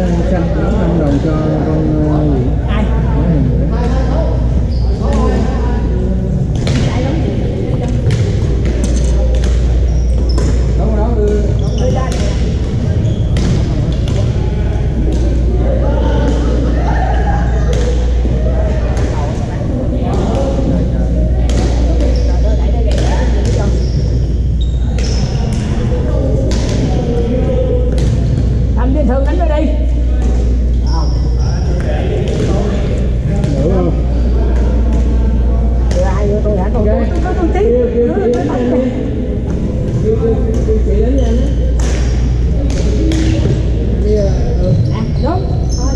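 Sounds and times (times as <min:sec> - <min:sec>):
steady low hum: 0:00.0 - 0:45.9
voices: 0:00.0 - 0:45.9
sneaker squeaks on hardwood: 0:08.9 - 0:10.8, 0:11.5 - 0:12.4, 0:21.8 - 0:25.7
rackets striking shuttlecock: 0:41.7 - 0:43.6.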